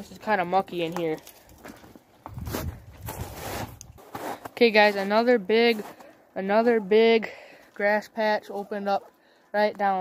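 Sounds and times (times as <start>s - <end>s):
footsteps on muddy ground: 0.7s - 6.8s.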